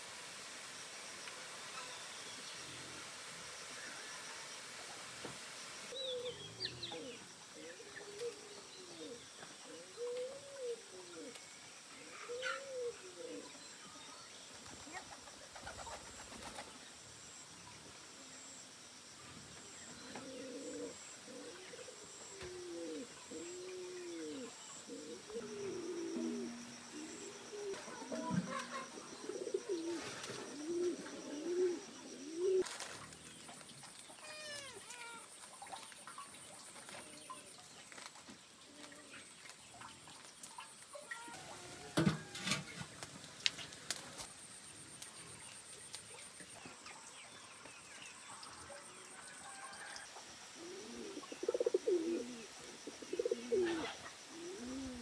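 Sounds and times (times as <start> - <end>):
dove cooing: 5.9 - 11.4, 12.0 - 13.6, 20.0 - 32.8, 50.6 - 55.0.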